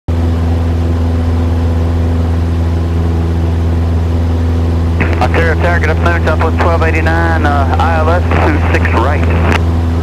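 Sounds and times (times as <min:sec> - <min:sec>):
airplane engine and propeller droning: 0:00.1 - 0:10.0.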